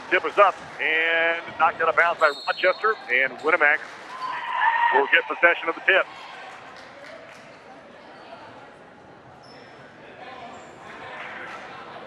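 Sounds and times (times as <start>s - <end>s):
spectators murmuring and chattering: 0.0s - 12.0s.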